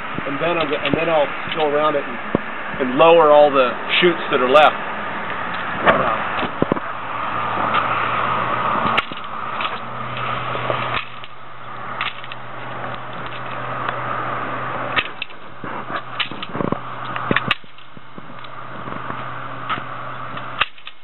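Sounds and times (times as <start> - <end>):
road traffic hum: 0.0 - 21.0.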